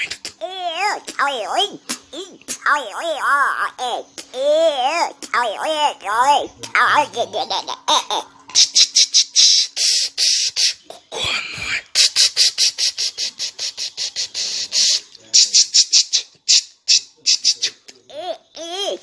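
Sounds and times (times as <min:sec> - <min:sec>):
child squealing: 0:00.0 - 0:07.3.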